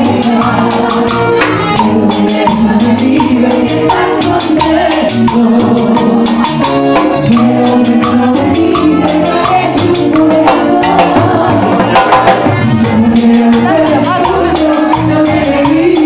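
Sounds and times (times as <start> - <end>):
keyboards: 0.0 - 16.0
piano accordion: 0.0 - 16.0
quick percussion beat: 0.0 - 16.0
woman singing into a microphone: 0.0 - 16.0.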